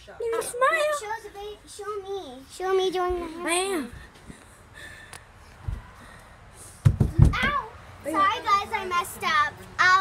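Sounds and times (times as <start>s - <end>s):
thud on wooden deck: 6.8s - 7.7s.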